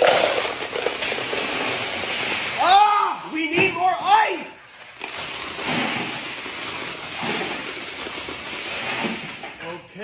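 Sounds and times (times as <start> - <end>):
ice clattering on countertop: 0.0 - 2.5, 5.0 - 9.4
ice cubes pouring into cup: 0.0 - 2.6, 4.8 - 9.6.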